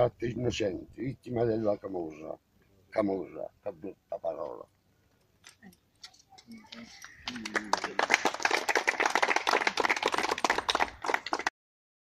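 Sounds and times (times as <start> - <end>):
people applauding: 7.0 - 11.5.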